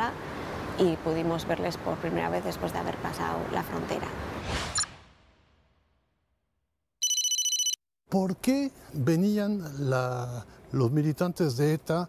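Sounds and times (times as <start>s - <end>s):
telephone ringing: 7.0s - 7.8s.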